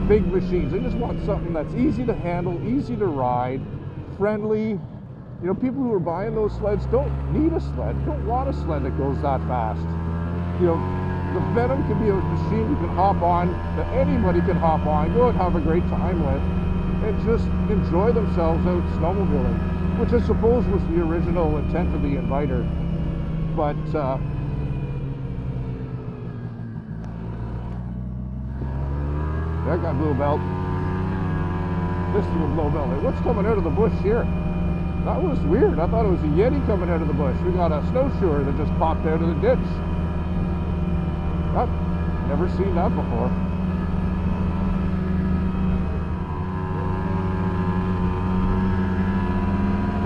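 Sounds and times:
snowmobile engine running: 0.0s - 4.8s, 5.4s - 50.0s.

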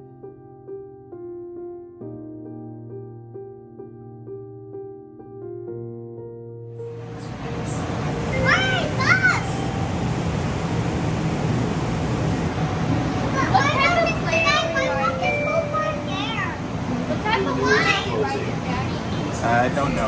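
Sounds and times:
people-mover train running: 6.8s - 20.0s.

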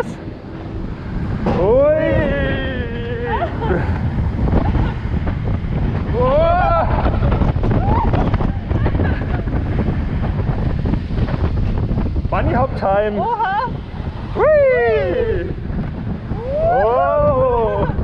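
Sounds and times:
roller coaster car rumbling on track: 0.0s - 18.0s
wind buffeting microphone: 0.0s - 18.0s.

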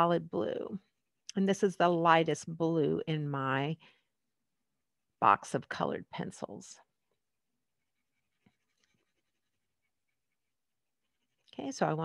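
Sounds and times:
colored pencil scratching on paper: 6.9s - 12.0s.

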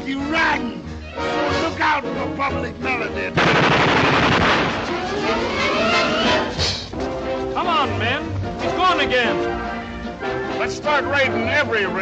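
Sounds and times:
rapid machine-gun fire: 3.4s - 4.9s
rising pitched glide: 4.8s - 6.6s.

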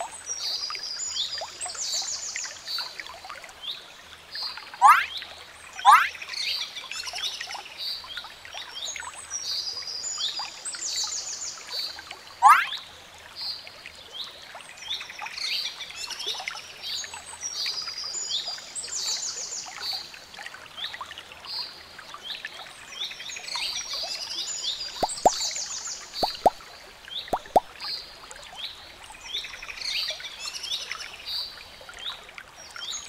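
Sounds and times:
small birds chirping: 24.9s - 26.6s
short plinks: 25.0s - 25.4s, 26.2s - 26.6s, 27.3s - 27.7s.

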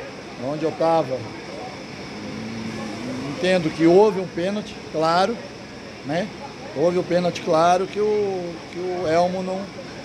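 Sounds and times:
faint steady hum: 0.0s - 10.0s
outdoor background noise: 0.0s - 10.0s.

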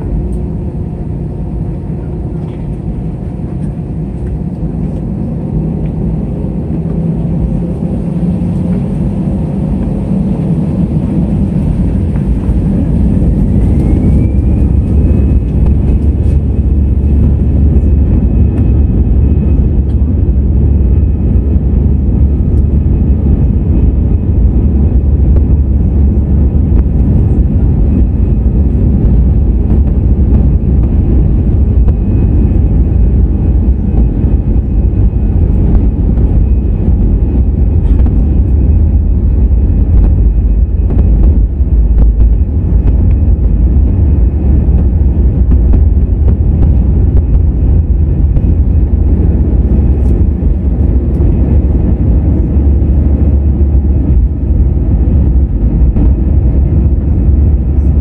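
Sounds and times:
jet engine whine: 0.0s - 58.0s
low rumble of takeoff roll: 0.0s - 58.0s.

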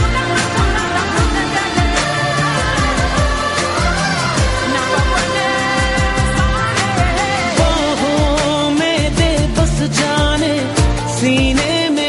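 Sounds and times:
pop song with vocals: 0.0s - 12.0s.

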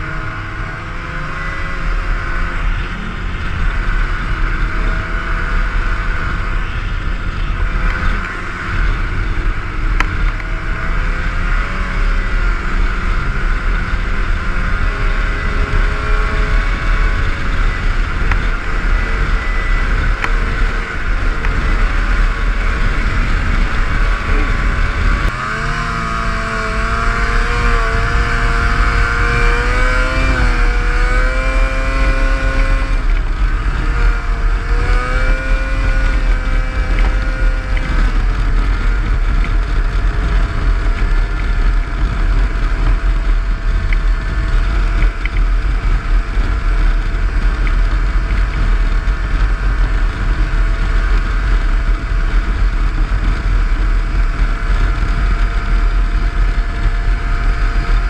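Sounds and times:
snowmobile engine running: 0.0s - 58.0s.

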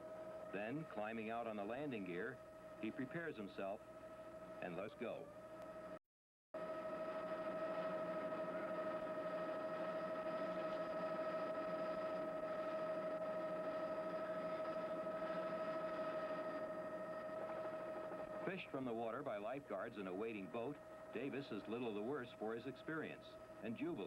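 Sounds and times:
helicopter whine and rush: 6.6s - 24.0s.

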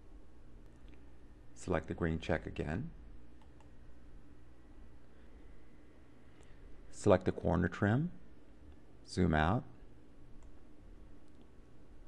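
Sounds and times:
computer mouse clicks: 3.4s - 3.8s, 10.4s - 10.6s.

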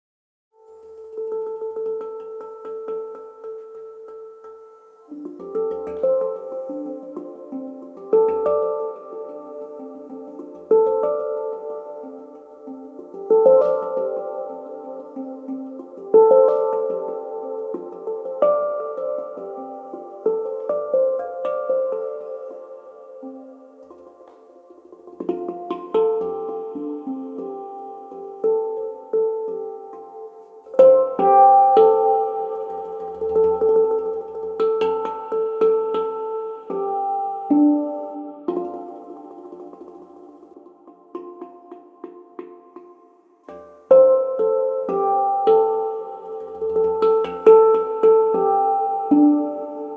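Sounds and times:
hand-struck steel drum notes: 0.6s - 49.9s.

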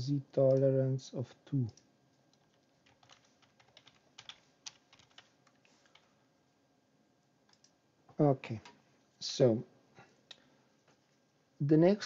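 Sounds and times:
typing on computer keyboard: 1.7s - 6.1s, 7.5s - 7.7s.

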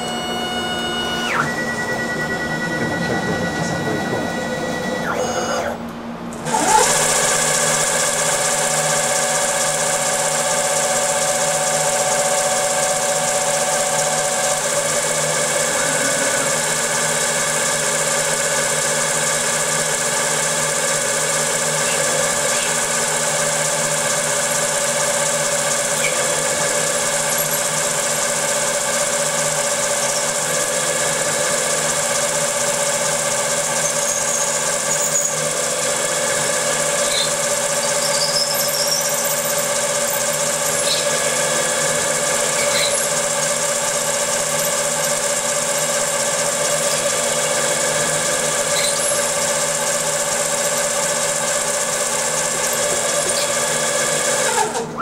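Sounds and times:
milling machine whine: 0.0s - 55.0s.

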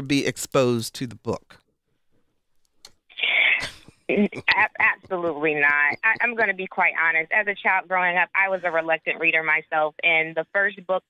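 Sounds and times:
woman laughing over telephone: 3.6s - 6.5s.

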